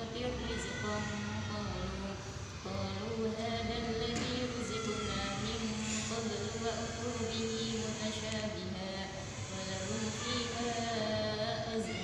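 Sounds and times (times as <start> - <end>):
child chanting recitation: 0.0 - 12.0
steady low hum: 0.0 - 12.0.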